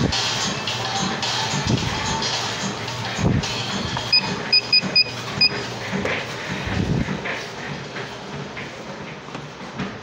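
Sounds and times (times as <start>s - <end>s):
background music: 0.0s - 6.6s
short electronic beeps: 4.1s - 5.6s.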